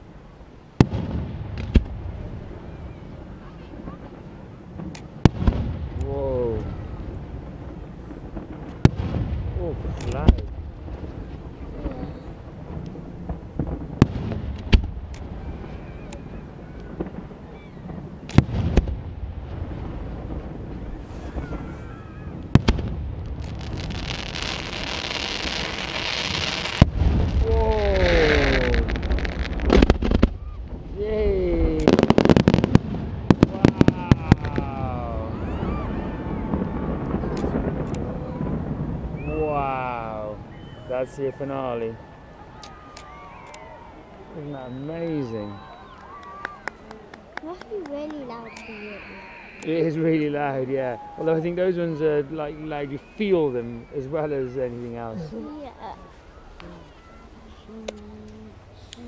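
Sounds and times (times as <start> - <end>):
fireworks crackling hiss: 0.0 - 59.0.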